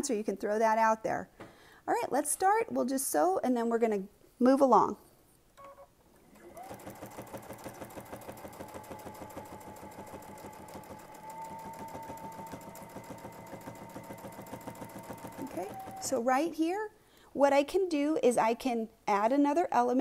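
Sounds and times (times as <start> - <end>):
sewing machine stitching: 6.2 - 16.3.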